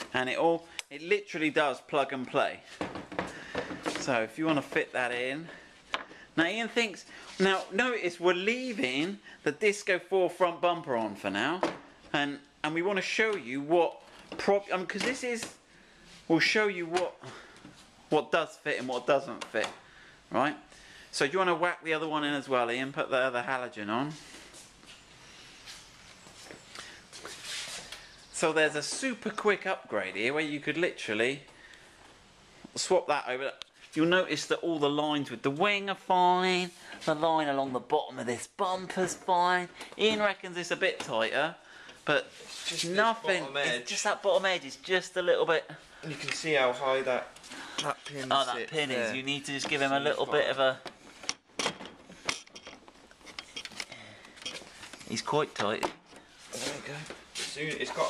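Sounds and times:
shuffling and rustling: 0:24.1 - 0:29.3.

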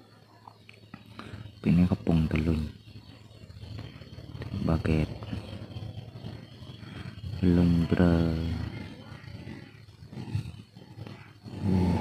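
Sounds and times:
thin high whine: 0:00.0 - 0:12.0
low mechanical rumble: 0:00.9 - 0:12.0.

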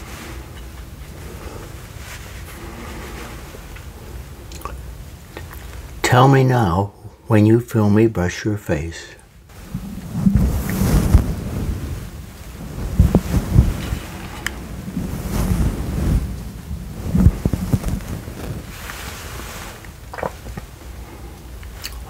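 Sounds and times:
makeup brush stroking microphone: 0:09.5 - 0:19.9.

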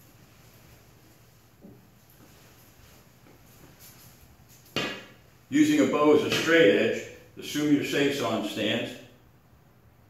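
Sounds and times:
wooden staff knocking on concrete: 0:04.7 - 0:05.2.

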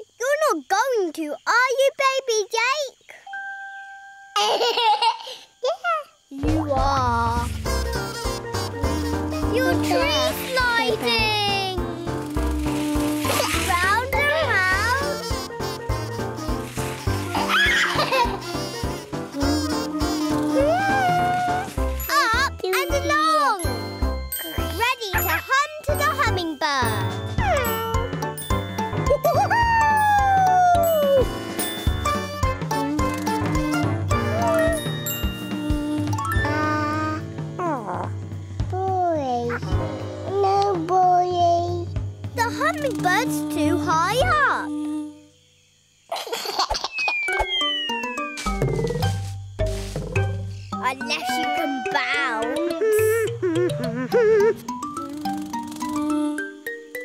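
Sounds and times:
bouncy cartoon music: 0:06.4 - 0:44.4, 0:46.9 - 0:57.0
baby babbling and laughing: 0:08.8 - 0:15.2, 0:19.3 - 0:21.8, 0:32.8 - 0:37.9, 0:51.0 - 0:56.5
steady whistle-like tone: 0:47.0 - 0:49.1
sliding pitch effects: 0:47.0 - 0:49.2.

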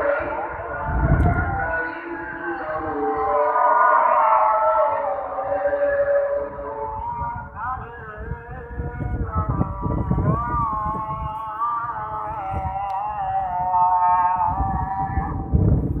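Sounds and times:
man chanting call to prayer: 0:00.0 - 0:15.7
low rumble: 0:06.0 - 0:16.0.

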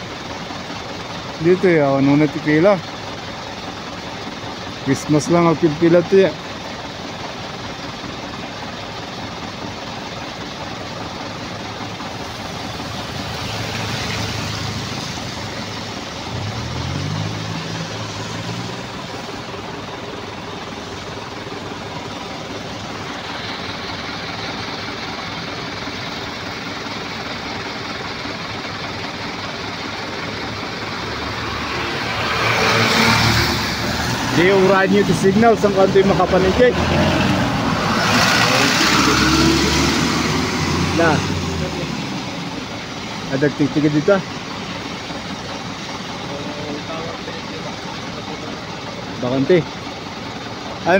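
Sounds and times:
diesel truck engines idling: 0:00.0 - 0:50.9
truck engine revving: 0:00.0 - 0:50.9
truck driving past: 0:11.1 - 0:50.9.

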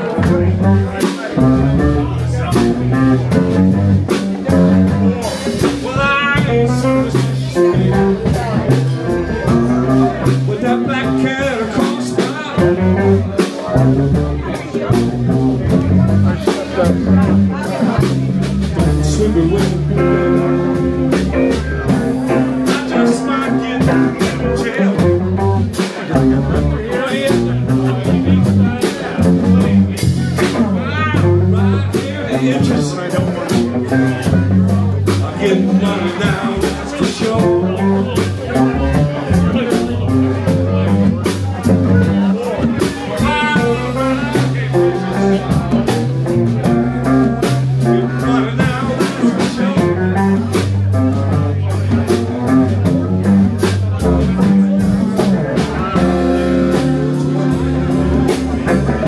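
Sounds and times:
bass notes: 0:00.0 - 0:59.0
blues band playing: 0:00.0 - 0:59.0
drum kit beat: 0:00.0 - 0:59.0
lead guitar: 0:00.0 - 0:59.0.

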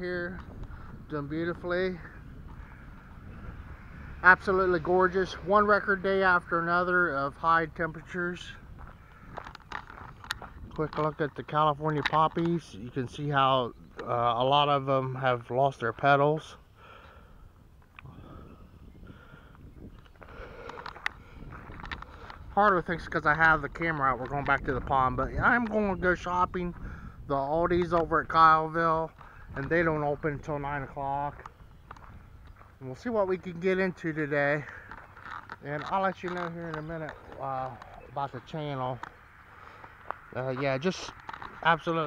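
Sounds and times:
wind buffeting microphone: 0:00.0 - 0:42.0
camera handling clicks and rustles: 0:09.1 - 0:11.0, 0:19.9 - 0:22.4, 0:34.8 - 0:38.0, 0:41.1 - 0:41.6.

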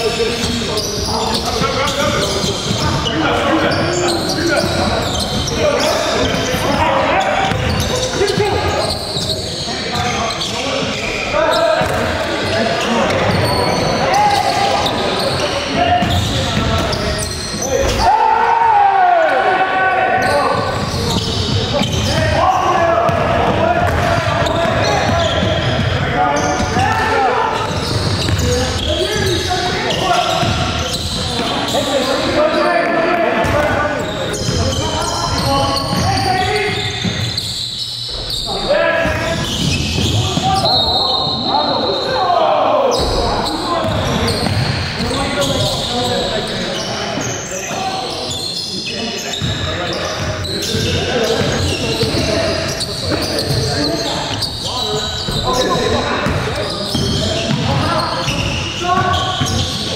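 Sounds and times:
players calling out: 0:00.0 - 0:59.9
basketball bouncing on wooden court: 0:07.4 - 0:09.0, 0:11.8 - 0:13.6, 0:15.9 - 0:17.0, 0:20.5 - 0:26.0, 0:27.6 - 0:31.5, 0:39.0 - 0:40.6, 0:43.0 - 0:45.8, 0:55.3 - 0:59.9.

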